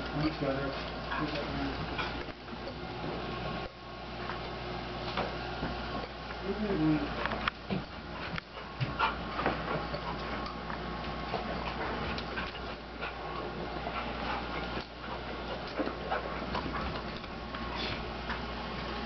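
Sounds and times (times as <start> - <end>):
steady low hum: 0.0 - 19.0
dog moving about: 7.1 - 18.5.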